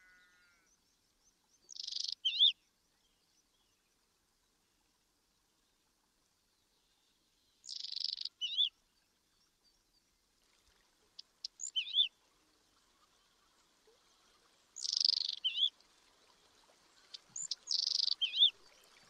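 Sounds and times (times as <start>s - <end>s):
songbird singing: 0.0s - 4.6s, 6.4s - 10.2s, 11.2s - 19.0s.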